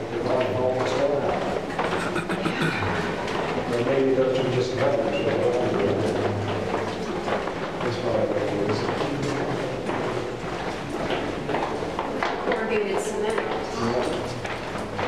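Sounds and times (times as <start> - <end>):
indistinct talk of people: 0.0 - 15.0
footsteps in stone tunnel: 3.1 - 15.0.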